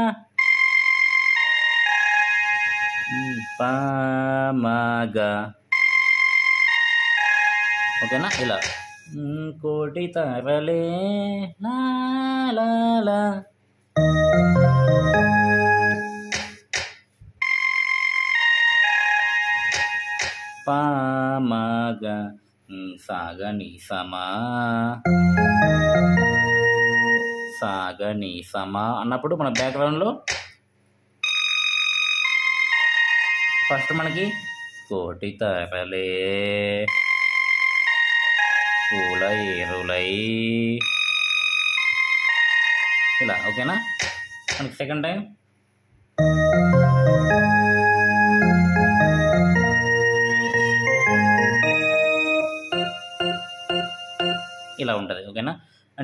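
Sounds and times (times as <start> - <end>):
electronic keyboard held notes: 0.4 - 3.9, 5.8 - 9.0, 14.0 - 16.8, 17.4 - 20.9, 25.0 - 27.8, 32.3 - 34.9, 36.9 - 41.0, 46.2 - 55.1
man singing: 3.1 - 5.6, 9.1 - 13.5, 20.7 - 22.4.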